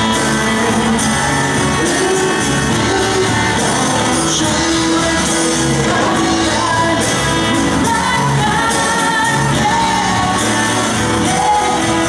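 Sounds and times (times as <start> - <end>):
acoustic guitar: 0.0 - 12.0
drums: 0.0 - 12.0
electric guitar: 0.0 - 12.0
lead vocal singing: 0.0 - 12.0.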